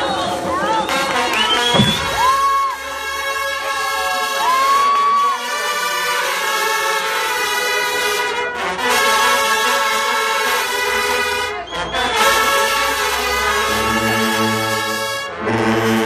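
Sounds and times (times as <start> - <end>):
crowd cheering: 0.0 - 6.2, 10.5 - 15.0
marching band brass chords: 0.0 - 16.0.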